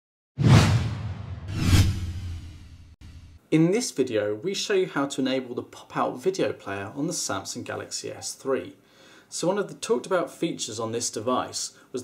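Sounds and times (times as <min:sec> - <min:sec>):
whoosh sound effects: 0:00.4 - 0:03.4.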